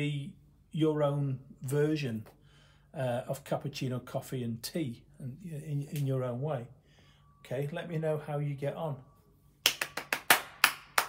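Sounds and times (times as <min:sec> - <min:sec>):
hand claps beating a rhythm: 0:09.6 - 0:11.0.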